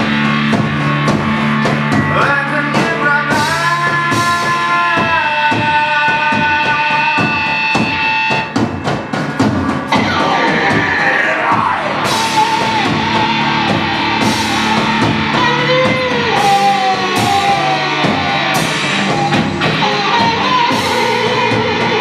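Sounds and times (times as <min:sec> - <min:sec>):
drum hits: 0:00.0 - 0:22.0
hard rock band playing: 0:00.0 - 0:22.0
bending guitar lines: 0:07.4 - 0:22.0.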